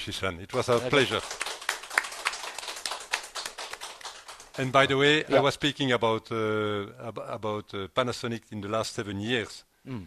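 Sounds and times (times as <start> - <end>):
quick irregular hand claps: 0.6 - 4.7.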